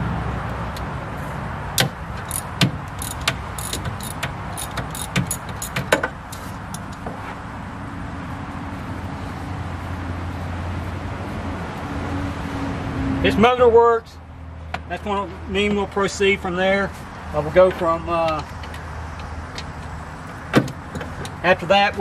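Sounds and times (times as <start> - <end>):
socket ratchet clicking: 1.8 - 6.0.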